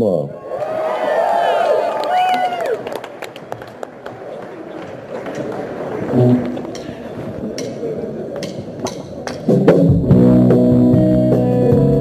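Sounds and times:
crowd noise: 0.3 - 10.9
crowd cheering: 0.4 - 8.3
scattered handclaps: 2.0 - 6.1.

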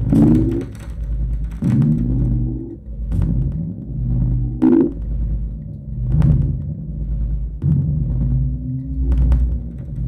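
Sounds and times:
crackling noise bursts: 0.0 - 10.0
low electronic drone: 0.0 - 10.0
gliding electronic tones: 4.4 - 5.0.

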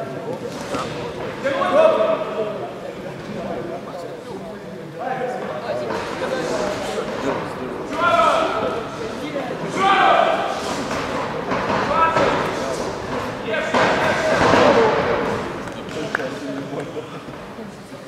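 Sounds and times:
people shouting: 9.7 - 10.6.

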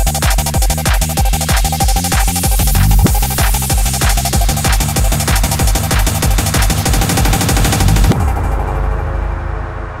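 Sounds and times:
rapid electronic drum roll: 0.0 - 8.9
muffled low bass drone: 0.0 - 10.0.

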